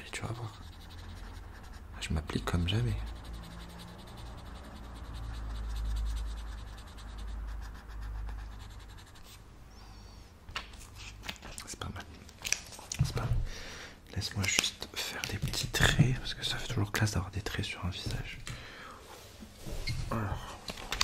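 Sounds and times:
pencil scratching on paper: 0.0s - 9.5s.

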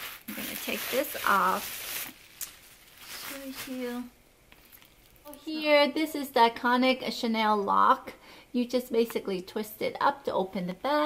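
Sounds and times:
tissue paper rustling: 0.0s - 4.1s.

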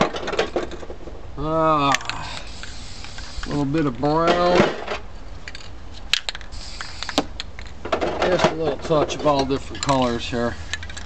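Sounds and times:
spray paint cans clicking: 1.8s - 3.6s, 5.4s - 11.0s.

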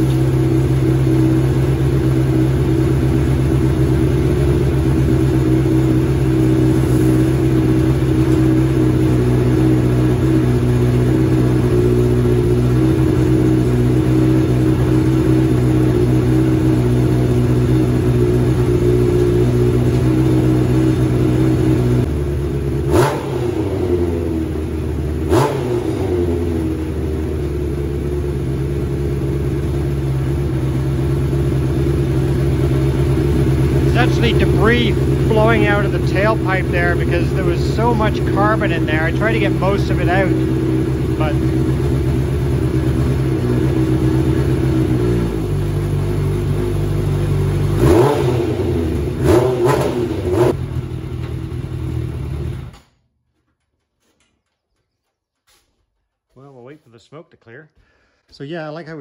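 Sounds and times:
motorcycle engine idling: 0.0s - 53.0s.

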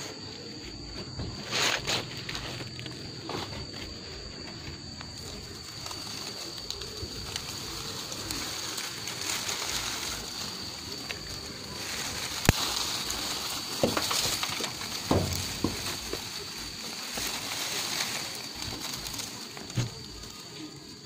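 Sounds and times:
dove cooing: 0.0s - 21.0s
leaves and twigs rustling: 0.0s - 21.0s.

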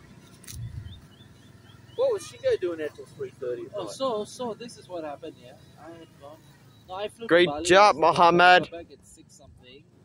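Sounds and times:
small bird chirping: 0.0s - 7.6s.

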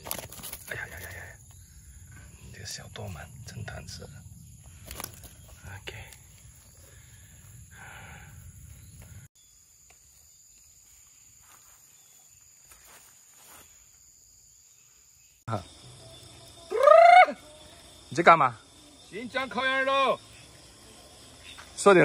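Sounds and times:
insect chirring: 0.0s - 22.0s.

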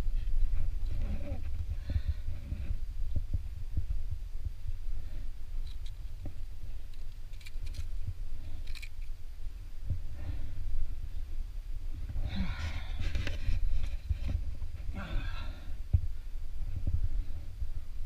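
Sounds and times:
low microphone rumble: 0.0s - 18.0s
person grunting with effort: 14.9s - 15.7s.

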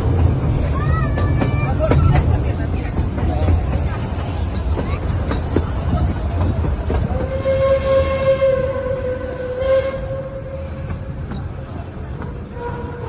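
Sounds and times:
train carriages rumbling on track: 0.0s - 13.0s
steam locomotive whistle: 7.3s - 11.0s.

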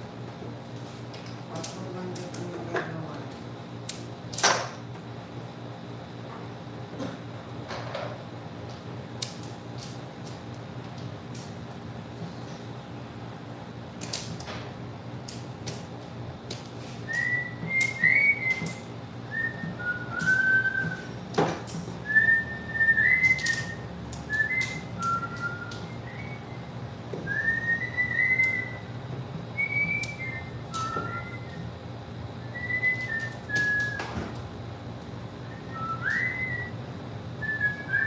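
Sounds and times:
person whistling a tune: 17.1s - 21.1s, 22.0s - 28.9s, 29.6s - 31.7s, 32.4s - 34.2s, 35.4s - 36.8s, 37.4s - 38.0s.

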